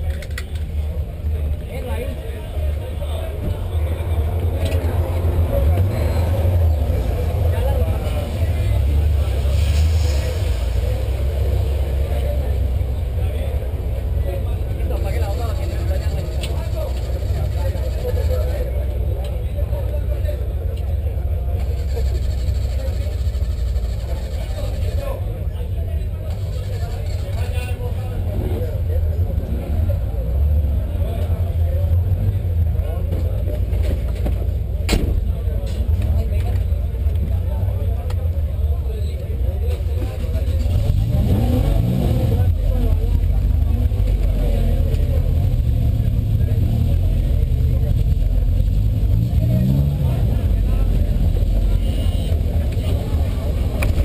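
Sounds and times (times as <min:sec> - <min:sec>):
people talking: 0:00.0 - 0:54.0
car engine idling: 0:00.1 - 0:29.3.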